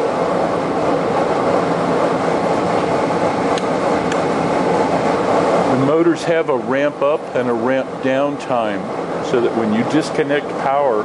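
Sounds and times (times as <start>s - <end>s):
furnace blower rushing air: 0.0s - 11.0s.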